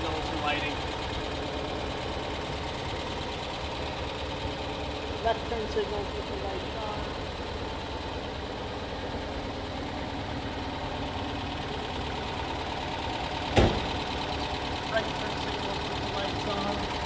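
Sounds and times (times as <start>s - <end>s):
car engine idling: 0.0s - 17.0s
sharp thump: 13.5s - 14.0s.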